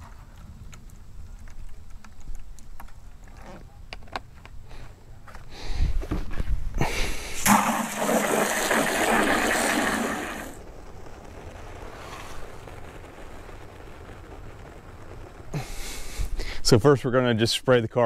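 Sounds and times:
hose water rushing into bucket: 0:07.4 - 0:10.6.

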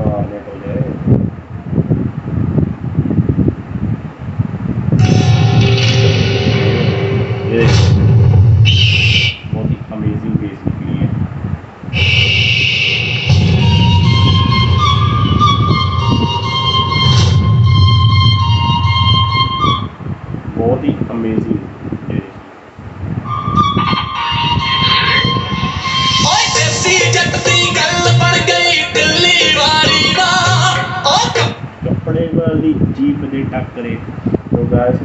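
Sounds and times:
speaker audio with heavy bass: 0:05.0 - 0:11.2, 0:11.9 - 0:22.4, 0:23.5 - 0:35.0.

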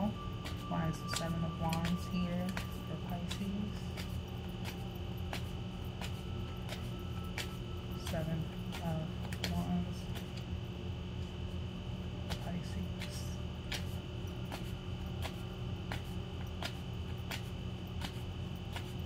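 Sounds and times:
steady low hum: 0:00.0 - 0:19.0
cards being shuffled: 0:00.4 - 0:10.5, 0:12.3 - 0:19.0.

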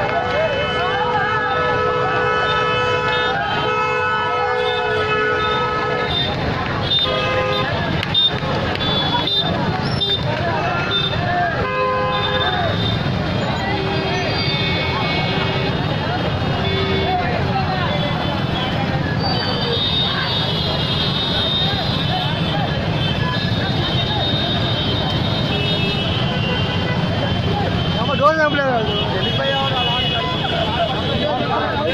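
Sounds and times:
crowd voices: 0:00.0 - 0:31.9
dense street traffic: 0:00.0 - 0:31.9
horns honking: 0:00.0 - 0:31.9.

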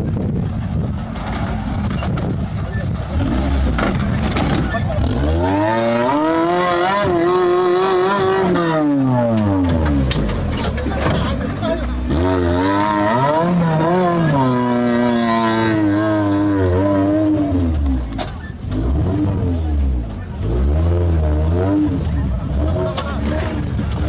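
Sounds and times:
engine revving hard: 0:03.1 - 0:10.2, 0:12.0 - 0:24.0.

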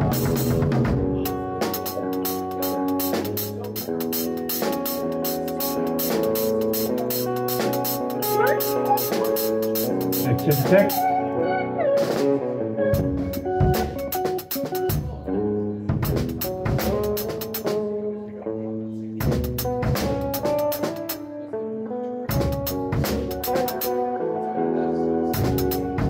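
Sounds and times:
drum kit shuffle groove: 0:00.0 - 0:11.3, 0:12.0 - 0:15.3, 0:15.9 - 0:18.0, 0:19.2 - 0:21.3, 0:22.3 - 0:24.1, 0:25.3 - 0:26.0.

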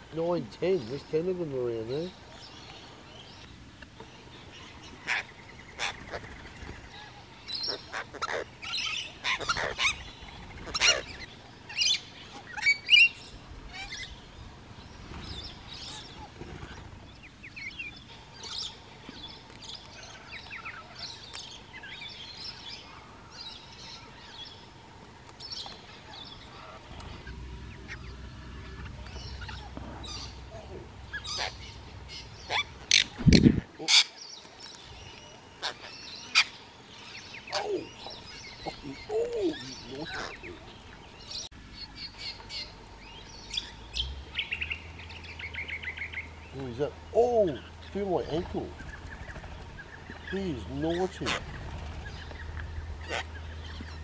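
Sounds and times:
lorikeets screeching and chattering: 0:04.1 - 0:24.7, 0:25.4 - 0:54.0.

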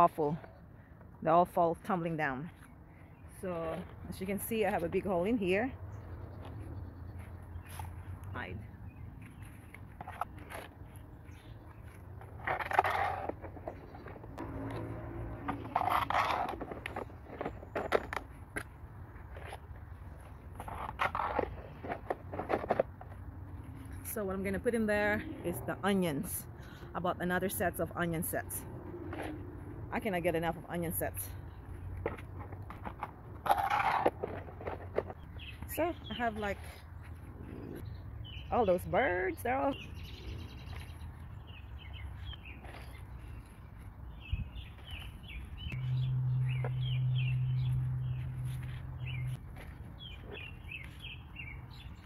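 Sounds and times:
plastic pots scraping: 0:06.4 - 0:37.8.

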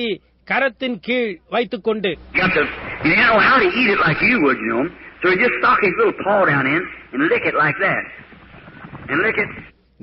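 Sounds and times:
man preaching: 0:00.0 - 0:08.3, 0:09.1 - 0:09.7.

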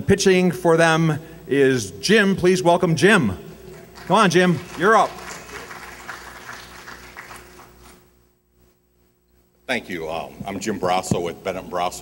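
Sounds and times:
audience applauding: 0:03.7 - 0:08.0.

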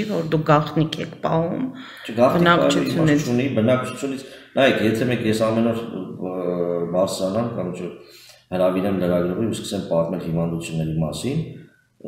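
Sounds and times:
man speaking: 0:02.0 - 0:11.6.

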